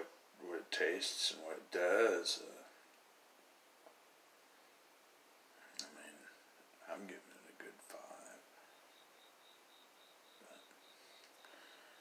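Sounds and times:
man whispering: 0.4 - 2.8, 5.6 - 8.6, 10.4 - 10.7.

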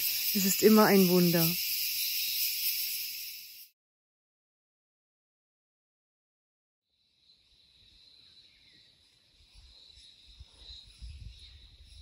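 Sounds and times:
high-pitched insect chorus: 0.0 - 3.8, 6.9 - 12.0.

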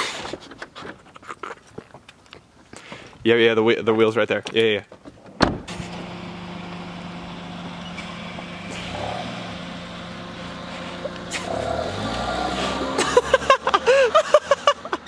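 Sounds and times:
car door shutting: 5.2 - 6.3
car engine running: 5.6 - 15.0
car pulling away: 5.6 - 15.0.

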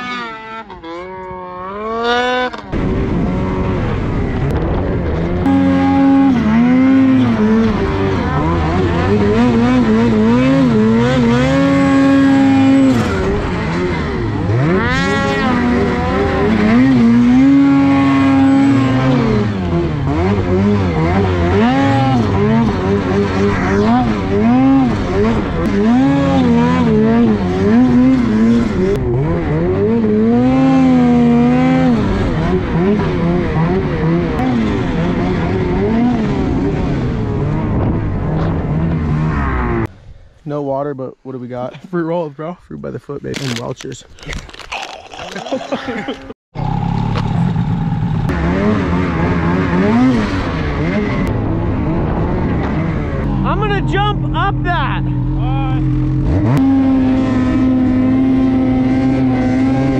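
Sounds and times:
snowmobile engine revving: 0.0 - 39.9, 45.2 - 59.9.

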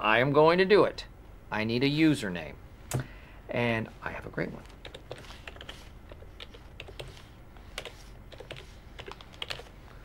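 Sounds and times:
computer keyboard typing: 4.8 - 9.7.

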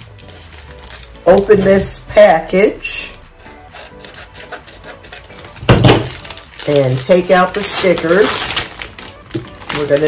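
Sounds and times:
scissors snipping plastic: 3.1 - 10.0.

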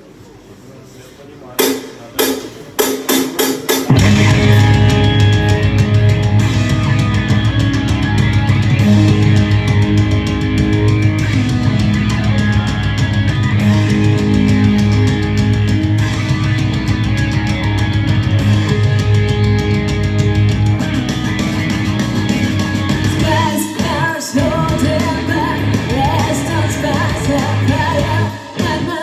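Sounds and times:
sharp drum hits: 1.6 - 12.0
heavy metal band playing: 1.6 - 29.0.

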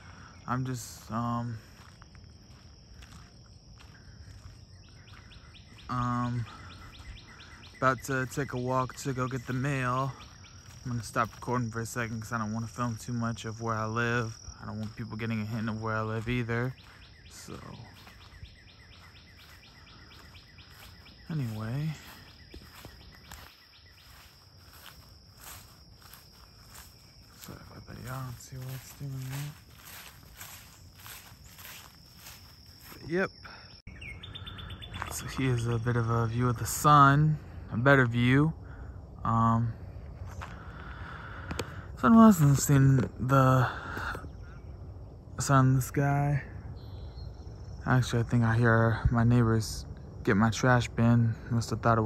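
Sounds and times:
footsteps on dirt path: 0.0 - 33.9, 34.7 - 36.1, 40.0 - 43.2
insects trilling: 0.0 - 52.0
bird chirping rapidly: 15.7 - 35.9.

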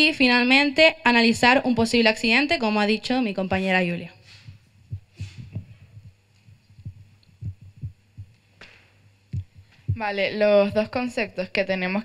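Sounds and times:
microphone handling thumps: 4.3 - 11.0.

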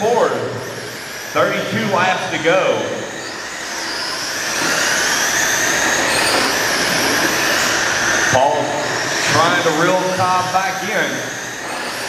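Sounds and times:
rc trucks motors whining: 0.0 - 12.0.

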